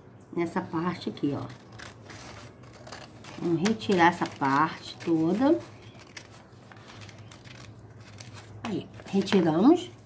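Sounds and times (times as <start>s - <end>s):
scissors cutting paper: 1.2s - 9.8s.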